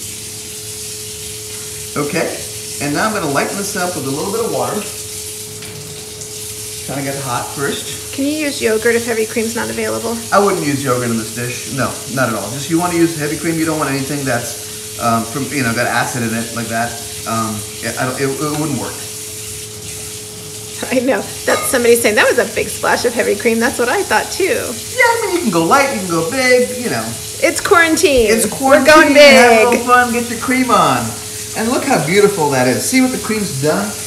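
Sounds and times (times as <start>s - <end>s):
food sizzling in a pan: 0.0s - 34.0s
tap water running into pitcher: 0.0s - 34.0s.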